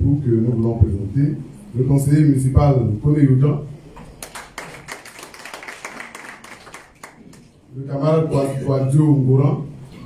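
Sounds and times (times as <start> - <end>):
people clapping: 4.2 - 7.6.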